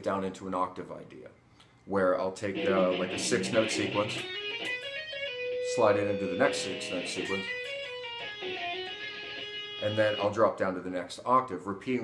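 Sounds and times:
man's voice: 2.2 - 4.2
electric guitar run: 2.6 - 10.0.

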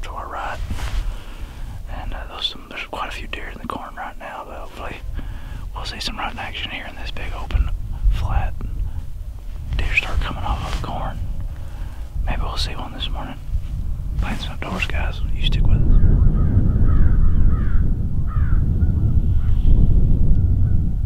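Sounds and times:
man whispering: 0.0 - 9.0, 9.6 - 13.5, 14.1 - 15.9
wind rumble on microphone: 0.0 - 21.0.

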